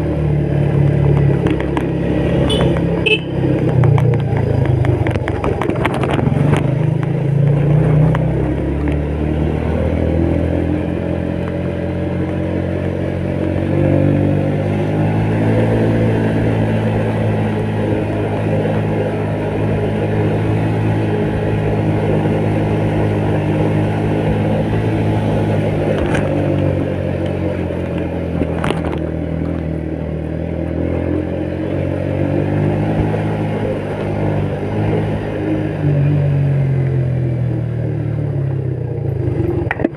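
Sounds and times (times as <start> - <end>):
motorcycle engine under load: 0.0 - 39.9.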